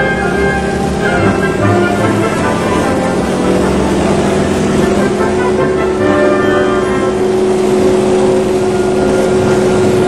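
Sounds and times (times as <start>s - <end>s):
radial engine and propeller running: 0.0s - 10.0s.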